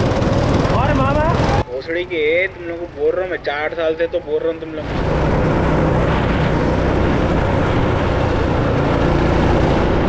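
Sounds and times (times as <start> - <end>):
go-kart engine running: 0.0 - 4.0, 4.8 - 10.0
man talking: 0.7 - 4.9
wind rushing on camera: 4.8 - 10.0.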